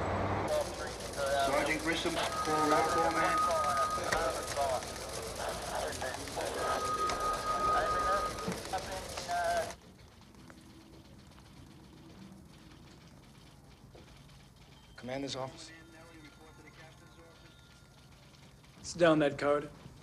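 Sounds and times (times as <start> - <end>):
room hum: 0.0 - 20.0
overlapping background voices: 0.5 - 9.8
steady high tone: 0.5 - 9.8.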